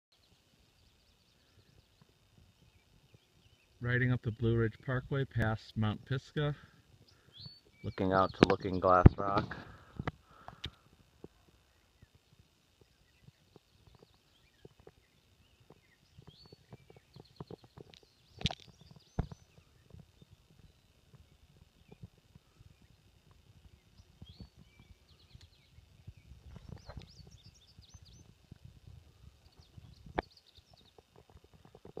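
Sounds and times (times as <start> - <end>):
birds chirping and trilling: 0.2 - 10.9, 11.5 - 32.0
microphone handling noise: 8.3 - 11.4, 15.7 - 20.4, 23.5 - 32.0.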